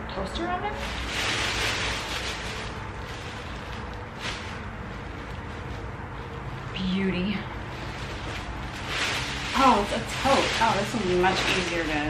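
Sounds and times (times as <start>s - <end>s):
plastic bag and clothing rustling: 0.2s - 12.0s.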